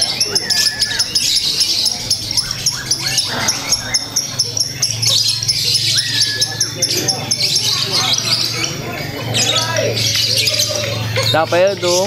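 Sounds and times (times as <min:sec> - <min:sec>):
lovebird chattering: 0:00.0 - 0:12.0.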